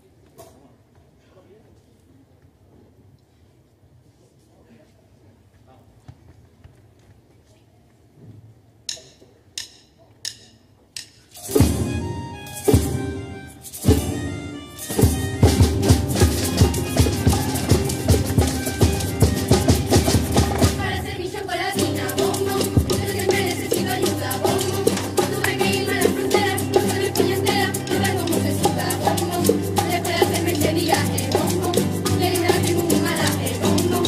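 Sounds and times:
band playing guitars and bongos: 0:11.2 - 0:34.0.

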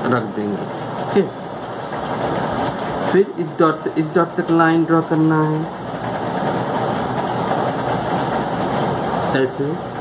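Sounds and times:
steady mechanical motor noise: 0:00.0 - 0:10.0.

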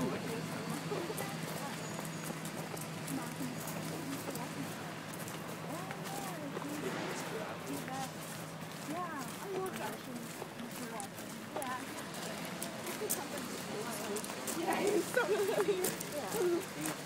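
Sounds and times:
chatter of many voices: 0:00.0 - 0:17.0
footstep clicks: 0:00.0 - 0:17.0.

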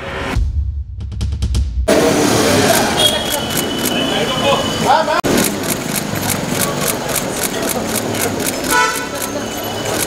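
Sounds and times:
murmur of voices: 0:01.9 - 0:10.0
rapid camera shutter clicks: 0:02.7 - 0:04.0, 0:05.3 - 0:10.0.

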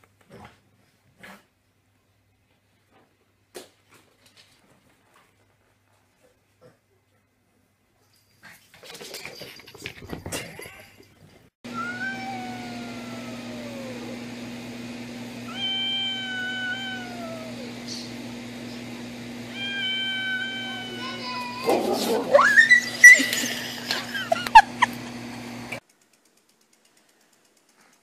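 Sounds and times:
cat yowling: 0:11.7 - 0:14.2, 0:15.5 - 0:18.1, 0:19.5 - 0:23.6.

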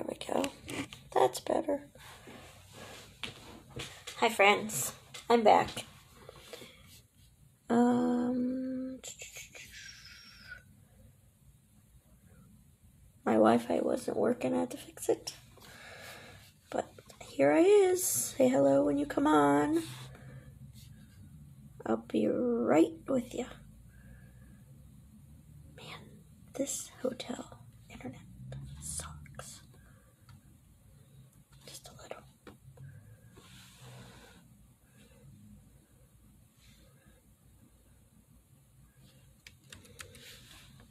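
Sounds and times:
woman whispering: 0:07.7 - 0:10.6, 0:16.7 - 0:20.0, 0:25.8 - 0:29.8, 0:31.6 - 0:32.4
soft hissing: 0:33.2 - 0:35.4.

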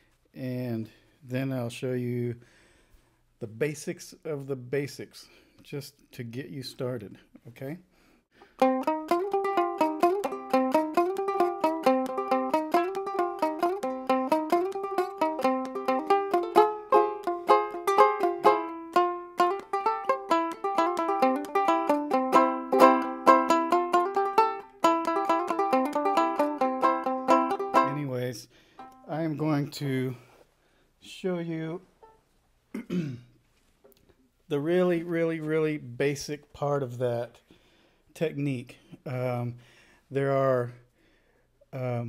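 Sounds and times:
banjo ukulele plucking and strumming: 0:08.4 - 0:29.3.

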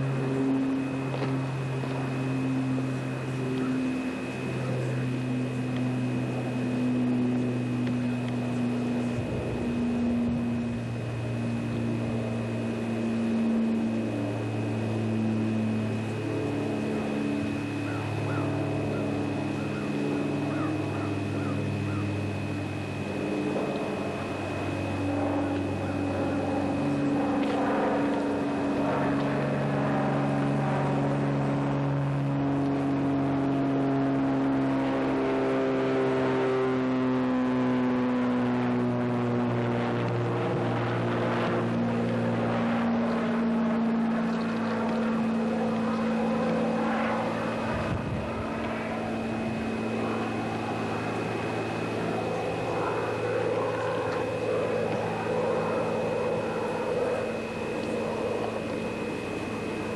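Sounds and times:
engine running: 0:00.0 - 0:59.9
thin high whine: 0:00.0 - 0:59.9.

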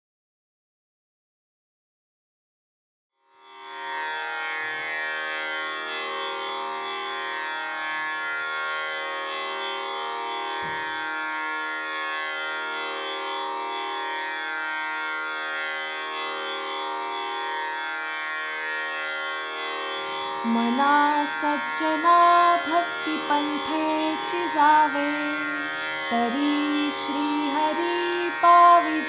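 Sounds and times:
buzzy drone: 0:03.5 - 0:29.0.

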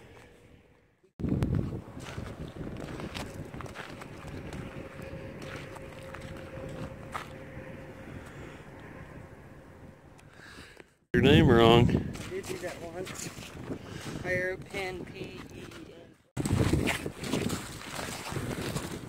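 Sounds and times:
wind rumbling on microphone: 0:00.0 - 0:19.0
footsteps on salt crust: 0:01.2 - 0:07.4, 0:15.0 - 0:19.0.

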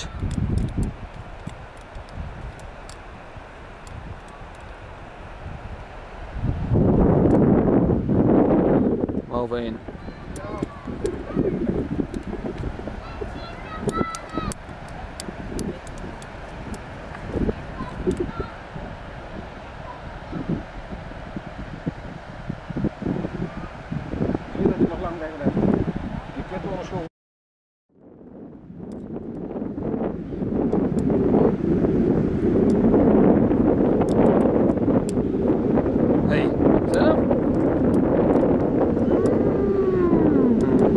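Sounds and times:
wind buffeting microphone: 0:00.0 - 0:27.1, 0:28.0 - 0:40.9
faint clicks: 0:00.2 - 0:03.0, 0:13.8 - 0:17.3, 0:18.1 - 0:18.3, 0:40.6 - 0:40.9
faint ticks: 0:00.2 - 0:03.0.

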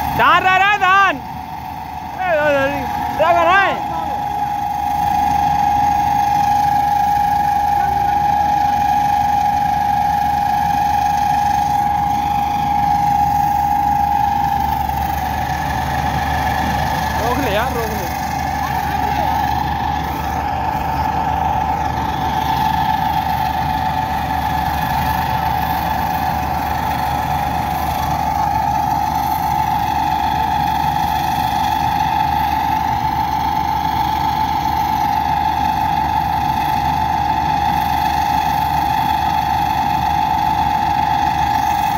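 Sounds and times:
combine harvester engine drone: 0:00.0 - 0:41.9
machine high whine: 0:00.0 - 0:41.9
wavering sound: 0:02.9 - 0:30.8.

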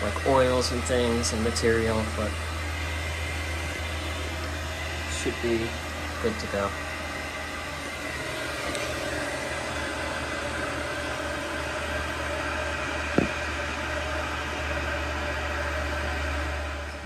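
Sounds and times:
gas boiler humming and rushing: 0:00.0 - 0:17.0.

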